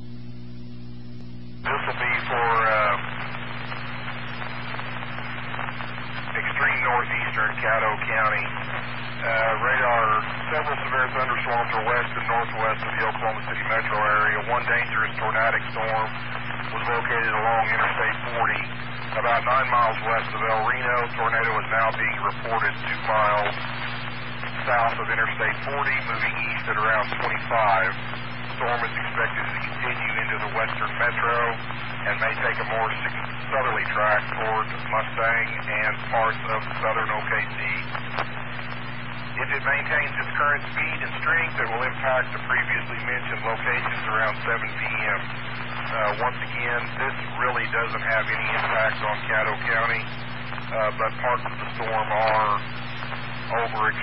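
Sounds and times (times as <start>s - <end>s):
steady hum: 0.0s - 54.0s
person speaking over radio: 1.7s - 38.4s, 39.4s - 54.0s.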